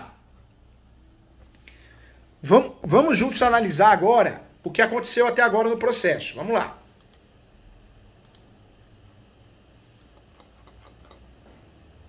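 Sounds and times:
low room hum: 0:00.0 - 0:12.0
computer clicks: 0:06.9 - 0:07.3, 0:08.2 - 0:08.5.

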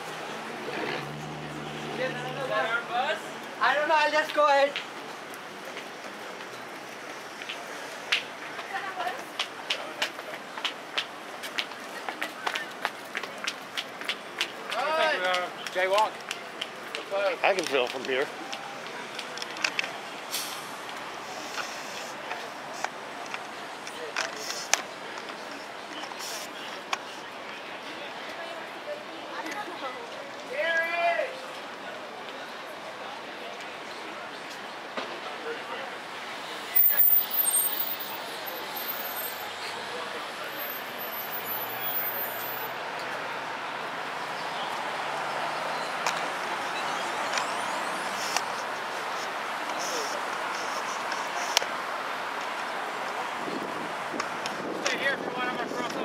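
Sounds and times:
city street traffic: 0:00.0 - 0:56.0
short hiss: 0:20.3 - 0:22.2.

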